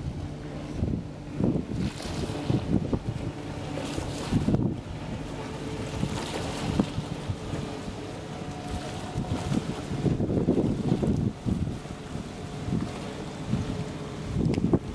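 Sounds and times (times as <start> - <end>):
wind buffeting microphone: 0.0 - 14.9.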